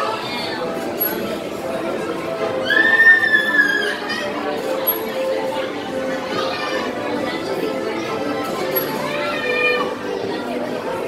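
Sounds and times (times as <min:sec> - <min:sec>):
carousel music: 0:00.0 - 0:11.0
crowd chatter: 0:00.0 - 0:11.0.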